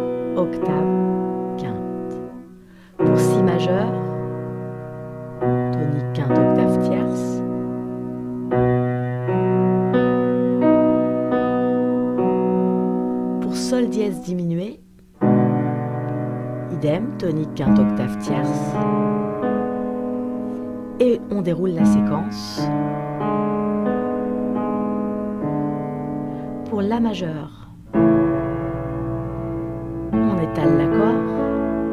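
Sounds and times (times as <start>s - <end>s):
piano broken chord: 0.0s - 31.9s.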